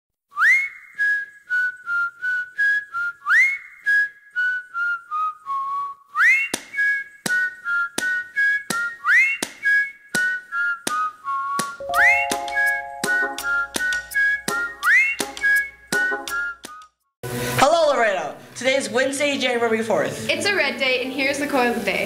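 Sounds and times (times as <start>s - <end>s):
whistled tune: 0.3s - 17.1s
backing band playing: 11.8s - 14.8s.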